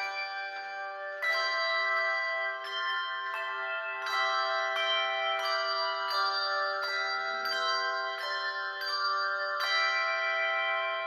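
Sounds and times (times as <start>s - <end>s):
handbell choir ringing: 0.0s - 11.0s.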